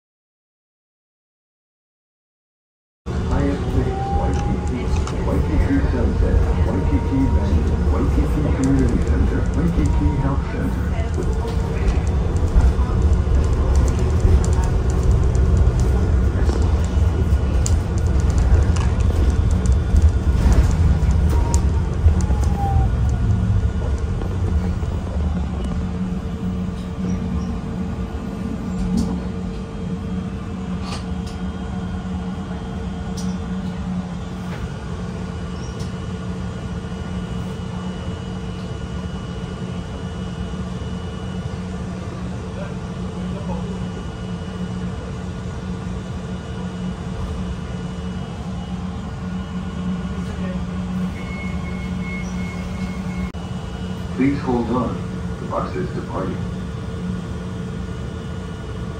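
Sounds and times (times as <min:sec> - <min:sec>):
bus engine rumble: 0:03.1 - 0:58.9.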